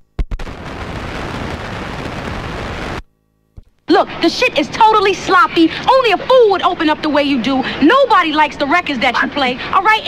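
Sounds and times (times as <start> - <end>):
white noise rush: 0.4 - 3.0.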